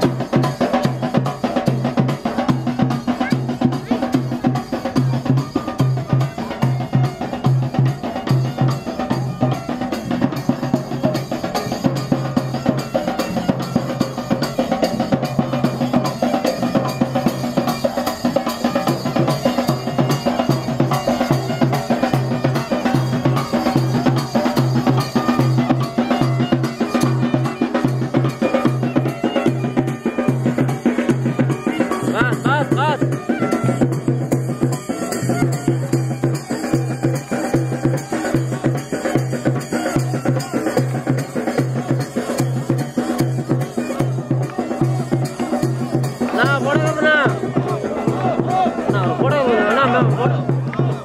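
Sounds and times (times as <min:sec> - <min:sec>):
side drum: 0:00.0 - 0:51.0.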